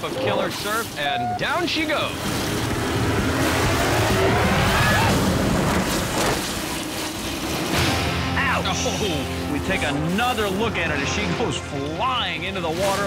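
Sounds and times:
background music: 0.0s - 1.6s, 7.7s - 13.0s
sled splashing into pool: 0.3s - 13.0s.

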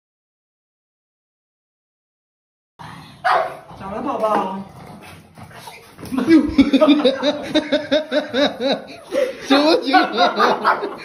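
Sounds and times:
dog barking sharply: 3.2s - 3.6s
person speaking: 9.2s - 11.0s.

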